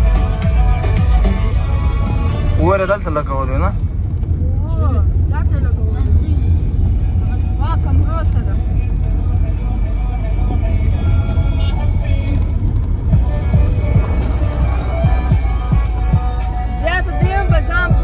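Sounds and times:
music with singing voice: 0:00.0 - 0:03.0, 0:06.5 - 0:18.0
road and engine rumble: 0:00.0 - 0:18.0.

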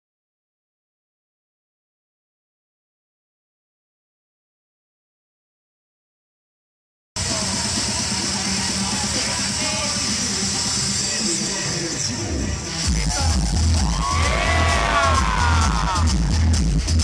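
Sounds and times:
crowd voices and yells: 0:07.2 - 0:16.6
electronic dance music: 0:07.2 - 0:17.0.

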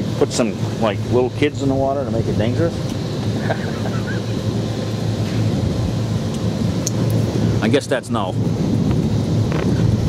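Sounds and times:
boat engines idling: 0:00.0 - 0:10.0
wind rumbling on microphone: 0:00.0 - 0:10.0.

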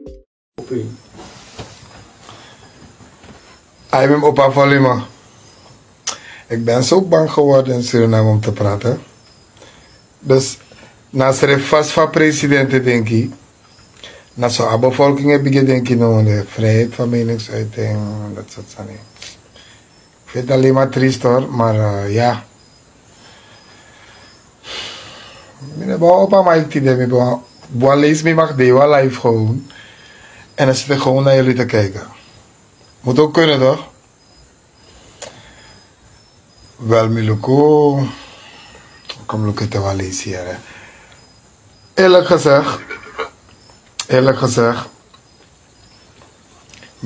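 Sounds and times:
man speaking: 0:00.6 - 0:01.0, 0:03.9 - 0:05.2, 0:06.1 - 0:09.1, 0:10.2 - 0:13.4, 0:14.4 - 0:19.4, 0:20.3 - 0:22.5, 0:25.6 - 0:29.7, 0:30.5 - 0:32.2, 0:33.0 - 0:34.0, 0:36.8 - 0:38.4, 0:39.1 - 0:40.8, 0:42.0 - 0:43.4, 0:44.0 - 0:45.0
high insect chirps: 0:00.6 - 0:47.0
steady background hiss: 0:00.6 - 0:47.0.

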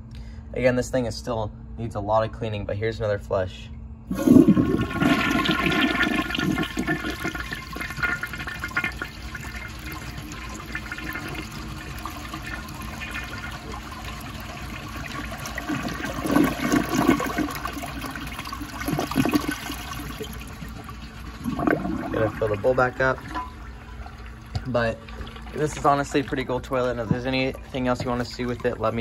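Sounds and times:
toilet flushing: 0:04.1 - 0:29.0.

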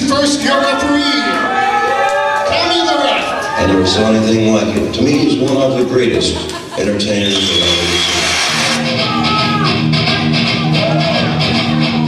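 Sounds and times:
man's recorded voice: 0:00.0 - 0:01.4, 0:02.5 - 0:08.4
rock music with guitar and drums: 0:08.0 - 0:12.0.

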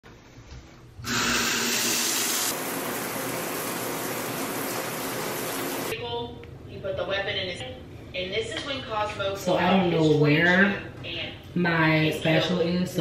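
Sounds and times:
shower water running: 0:01.0 - 0:06.0.

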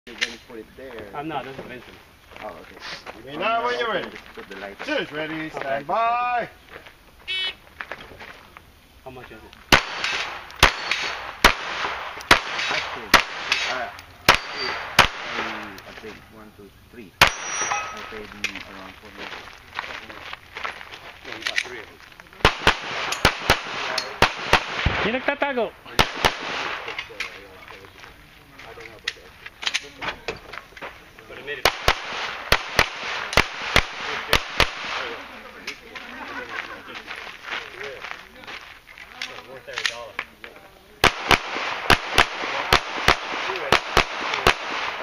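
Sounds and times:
faint gunshot: 0:09.7 - 0:15.7, 0:22.4 - 0:25.2
gunshots fired in pairs: 0:09.7 - 0:15.7, 0:17.2 - 0:18.1, 0:22.4 - 0:27.1, 0:31.6 - 0:35.3, 0:41.0 - 0:45.0
pistol shots with echo: 0:09.7 - 0:15.7, 0:17.2 - 0:18.2, 0:22.4 - 0:25.3, 0:25.9 - 0:27.0, 0:31.6 - 0:35.3, 0:41.0 - 0:45.0.

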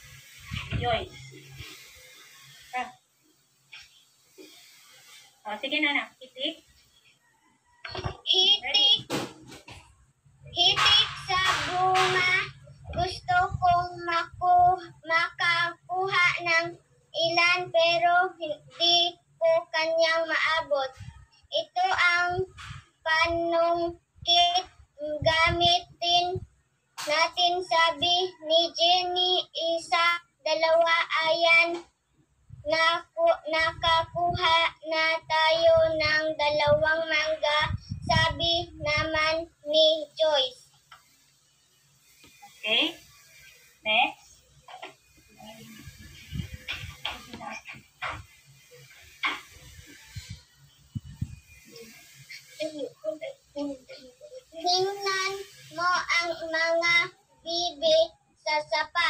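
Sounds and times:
child singing: 0:10.5 - 0:31.9, 0:32.6 - 0:40.6, 0:52.6 - 0:59.0.

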